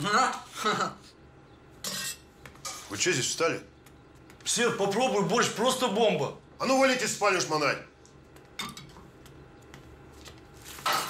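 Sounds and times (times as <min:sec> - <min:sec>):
kitchenware clattering: 0:01.8 - 0:02.9, 0:08.6 - 0:09.1, 0:10.8 - 0:11.0.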